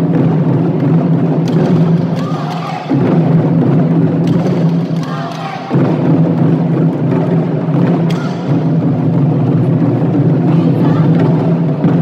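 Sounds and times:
drums struck with sticks: 0:00.0 - 0:12.0.

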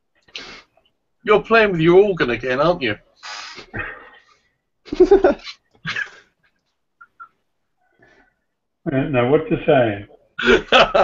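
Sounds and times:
person laughing: 0:04.9 - 0:06.3, 0:10.4 - 0:11.0.

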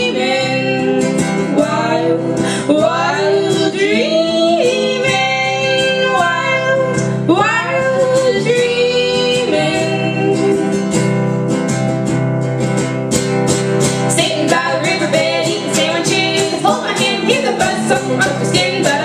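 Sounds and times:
women singing in harmony: 0:00.0 - 0:10.8, 0:14.1 - 0:19.0
acoustic guitar: 0:00.0 - 0:19.0.

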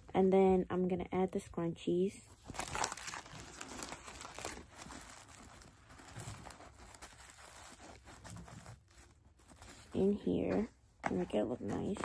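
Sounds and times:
tissue paper crinkling: 0:02.4 - 0:10.4.

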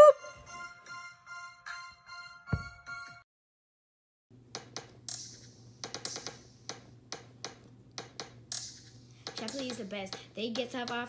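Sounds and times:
sharp short clicks and taps: 0:04.5 - 0:11.0.

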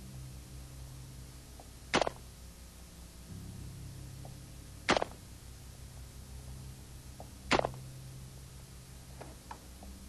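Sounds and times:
low hum: 0:00.0 - 0:10.0
rifle shots: 0:01.9 - 0:02.2, 0:04.9 - 0:05.2, 0:07.5 - 0:07.8.

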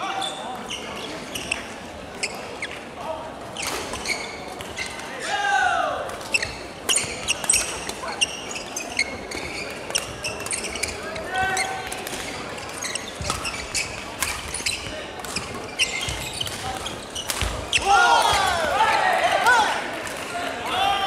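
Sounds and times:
shoes squeaking on wooden floor: 0:03.6 - 0:05.1, 0:06.3 - 0:17.8
rackets striking shuttlecock: 0:11.6 - 0:18.6.

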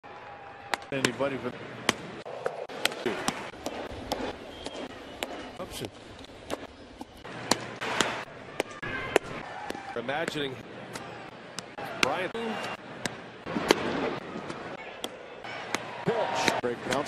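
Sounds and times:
ballpark crowd noise: 0:00.0 - 0:17.0.

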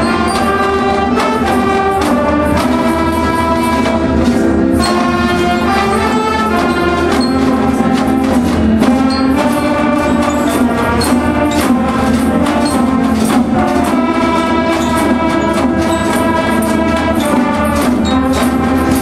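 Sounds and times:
brass and wind band playing chords: 0:00.0 - 0:19.0
percussion strokes: 0:00.0 - 0:19.0.

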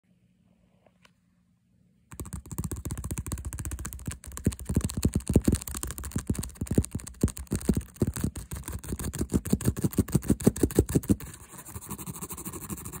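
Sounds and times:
fingernails tapping on a bag: 0:02.1 - 0:11.2.

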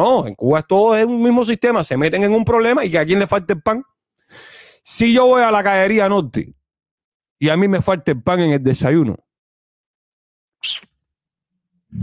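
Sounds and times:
sharp breath at microphone: 0:04.2 - 0:04.8.

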